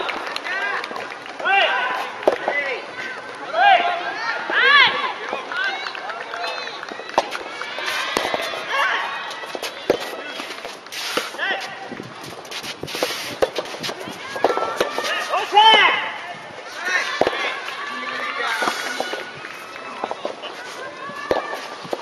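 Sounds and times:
rackets hitting tennis ball: 0.0s - 22.0s
people shouting: 3.4s - 10.5s, 13.9s - 22.0s.

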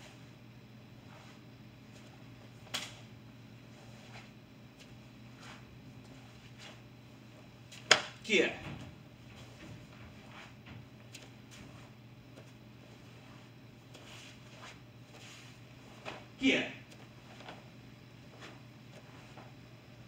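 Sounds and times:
steady low hum: 0.0s - 20.0s
uniform snapping crack: 2.7s - 3.0s, 7.8s - 8.2s
bare feet shifting on mat: 3.6s - 8.2s, 8.8s - 19.7s.

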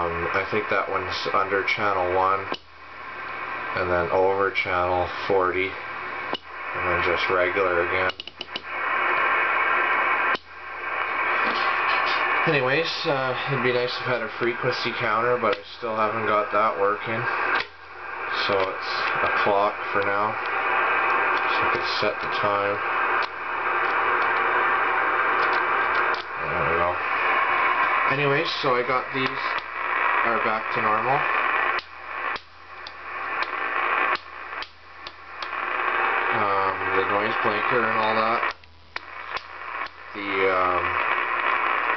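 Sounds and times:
radio click: 0.0s - 41.9s
radio static hiss: 0.0s - 41.9s.

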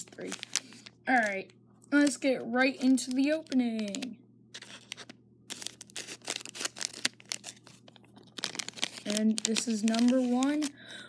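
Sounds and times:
plastic packet crinkling: 0.0s - 10.8s.

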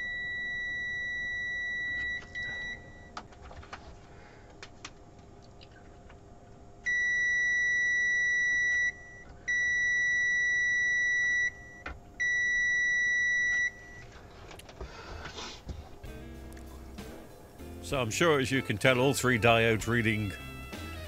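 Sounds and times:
multimeter continuity beeps: 0.0s - 3.2s, 6.9s - 14.1s.

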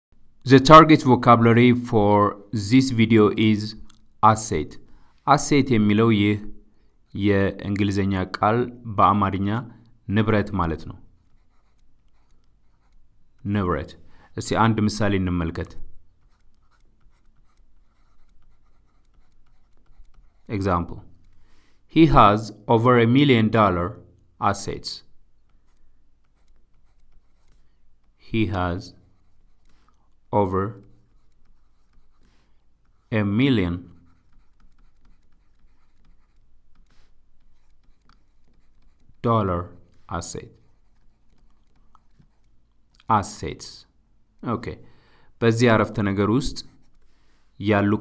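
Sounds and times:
stylus scratching on tablet: 10.3s - 14.0s, 14.6s - 21.6s, 25.0s - 42.8s, 45.9s - 47.4s.

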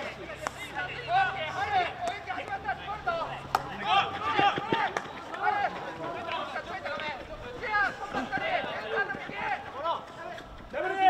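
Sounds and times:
voices calling out: 0.0s - 11.0s
hockey sticks striking ball: 3.4s - 10.6s.

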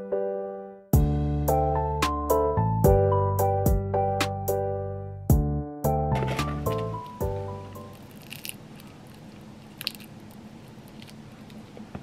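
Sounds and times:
crisp crust crunches: 6.7s - 11.8s
person chewing pizza: 7.8s - 11.8s.

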